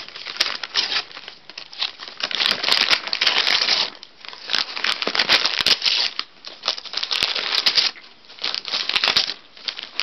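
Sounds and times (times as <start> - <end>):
dog tearing wrapping paper: 0.0 - 10.0.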